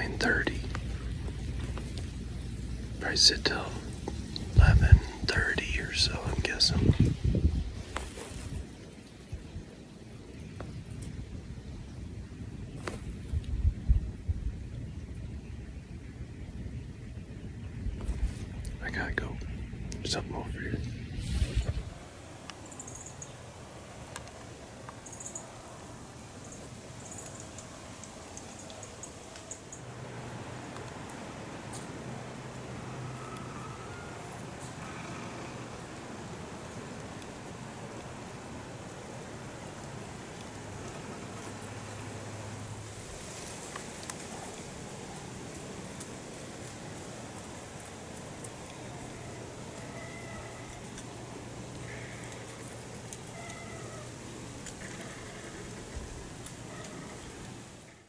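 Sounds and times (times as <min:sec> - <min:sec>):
steady low hiss: 0:00.0 - 0:58.0
faint bird calls: 0:21.9 - 0:29.9, 0:30.7 - 0:37.2, 0:48.4 - 0:58.0.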